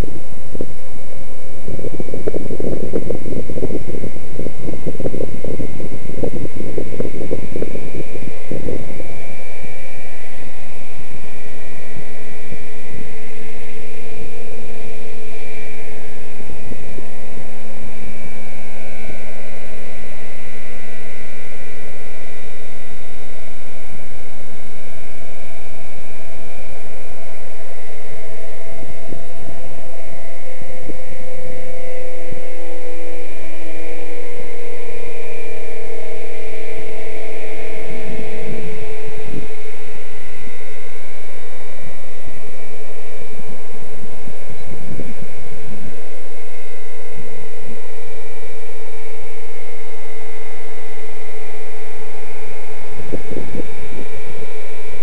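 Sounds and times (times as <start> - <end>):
low thumps and rumble: 1.6 - 9.2
model helicopter whine: 26.4 - 41.2.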